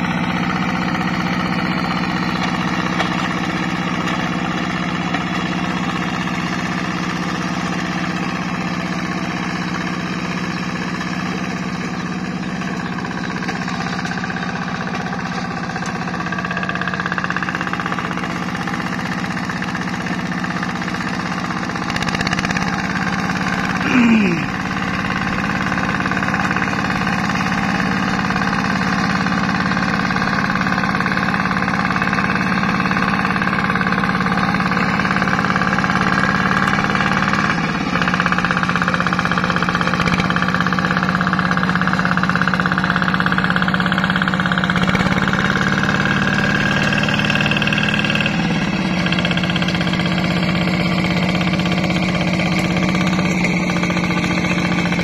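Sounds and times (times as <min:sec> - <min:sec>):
diesel engine running: 0:00.0 - 0:55.0.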